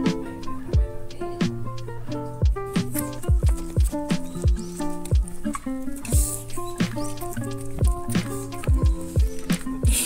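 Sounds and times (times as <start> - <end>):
music with kick-drum beat: 0.0 - 1.7, 2.4 - 5.4, 6.2 - 7.2, 7.8 - 10.0.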